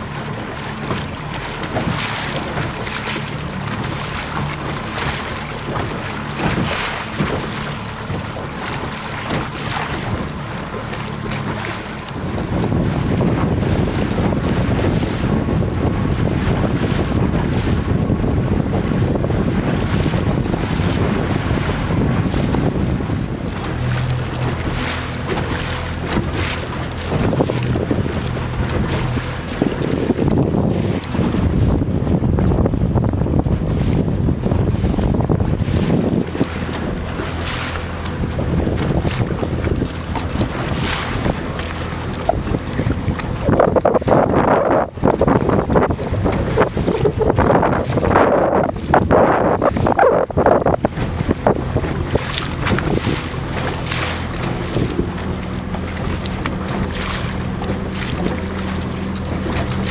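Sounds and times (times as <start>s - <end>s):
choppy water splashing: 0.0s - 59.9s
wind buffeting microphone: 0.0s - 59.9s.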